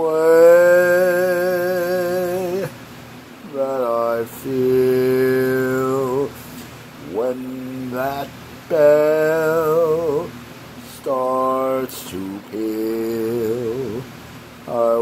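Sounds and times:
man singing unaccompanied: 0:00.0 - 0:15.0.

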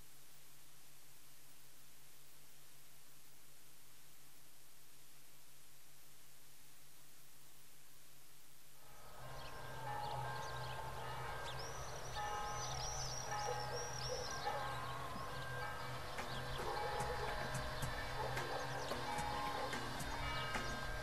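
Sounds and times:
soft sustained music: 0:08.8 - 0:21.0
birds chirping: 0:09.0 - 0:21.0.

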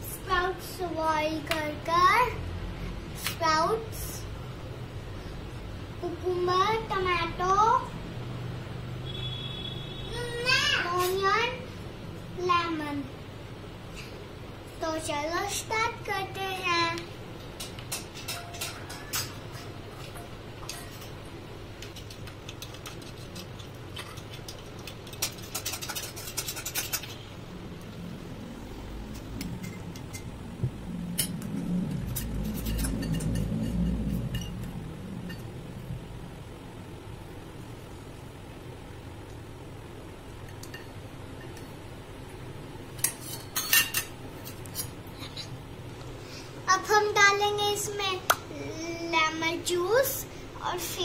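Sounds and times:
spoon clinking on steel bowls: 0:17.6 - 0:21.2, 0:32.2 - 0:34.6
low rumbling: 0:27.4 - 0:37.6.

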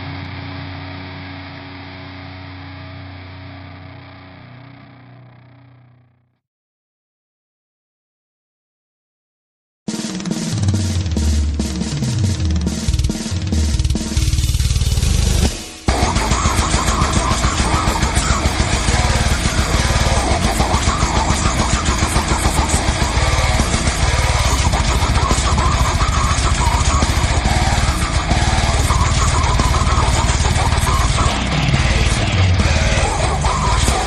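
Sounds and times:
fast dense drumming: 0:09.9 - 0:34.0
metal band playing loud: 0:09.9 - 0:34.0.

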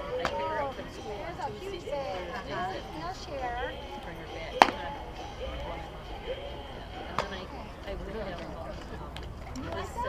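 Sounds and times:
players shouting: 0:00.0 - 0:09.0
baseball bat crack: 0:04.6 - 0:04.8.

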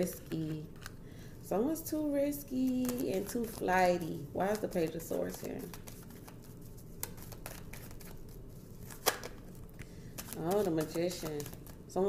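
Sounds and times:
cards tapping: 0:04.5 - 0:08.2.

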